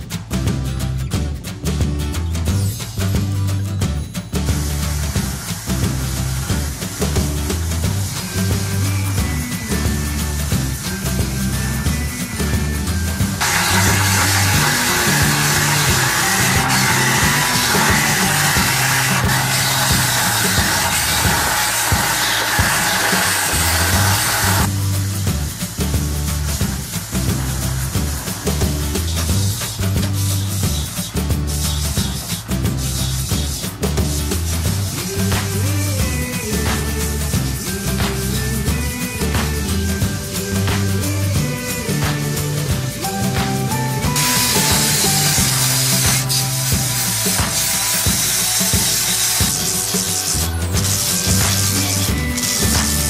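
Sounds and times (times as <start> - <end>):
background music with bass beat: 0.0 - 53.0
grinding hiss of sanding disc: 13.4 - 24.7, 43.7 - 53.0.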